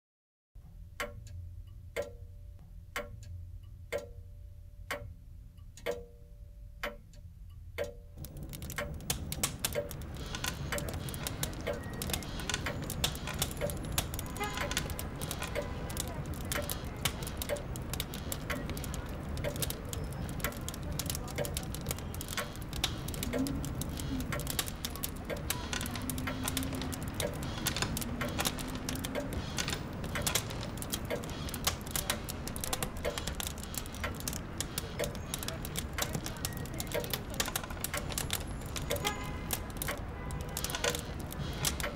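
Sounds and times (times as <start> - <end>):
quick clicks and hiss: 8.2 - 41.9.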